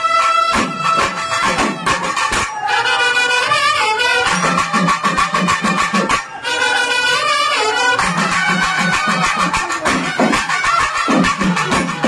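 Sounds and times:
cymbals: 0.0 - 12.0
horn melody: 0.0 - 12.0
fast drum beats: 0.5 - 6.4, 7.2 - 12.0.

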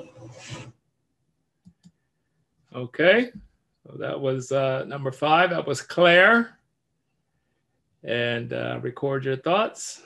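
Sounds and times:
rubbing on phone microphone: 0.0 - 0.8
faint clicks: 1.6 - 2.0.

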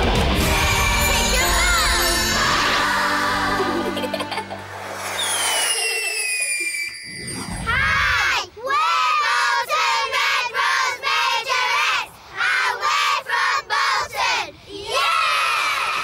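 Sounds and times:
theme jingle: 0.0 - 5.9
girls shouting a chant: 7.7 - 16.0.

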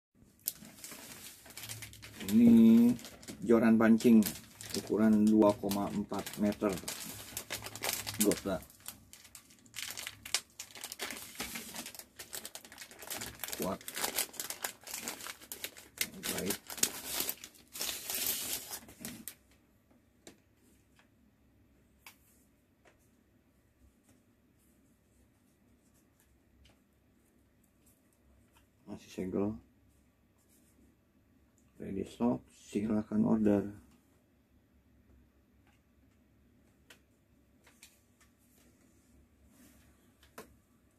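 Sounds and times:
plastic wrapping crinkling: 0.4 - 19.4
man speaking: 2.2 - 6.9, 8.1 - 8.7, 16.2 - 16.6, 31.8 - 33.8.

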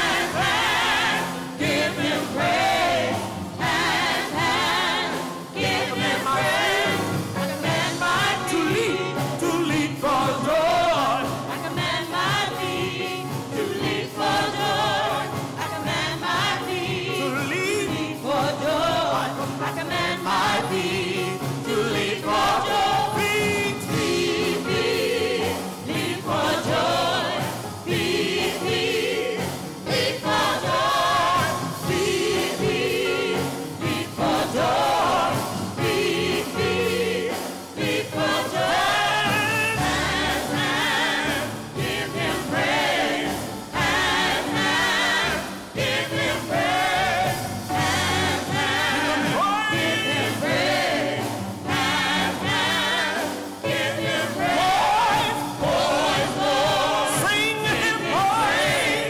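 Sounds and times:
gospel group singing: 0.0 - 59.0.

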